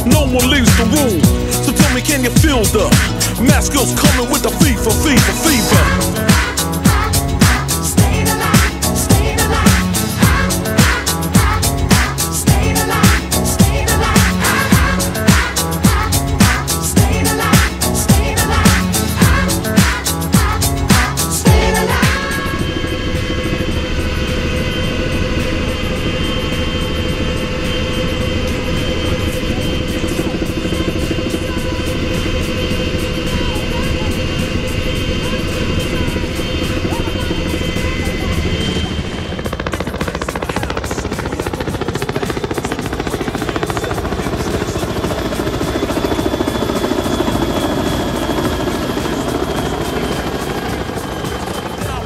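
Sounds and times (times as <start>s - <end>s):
helicopter whine and rotor beat: 0.0s - 52.0s.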